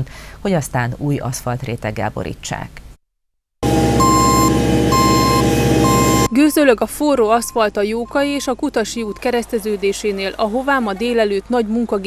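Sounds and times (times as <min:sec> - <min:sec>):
road roller diesel engine running: 0:03.6 - 0:06.4
reversing alarm beeping: 0:03.6 - 0:06.5.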